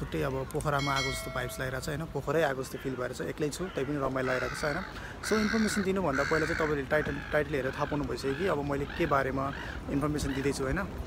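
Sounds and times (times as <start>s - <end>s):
man talking: 0.0s - 11.0s
crow cawing: 2.4s - 10.8s.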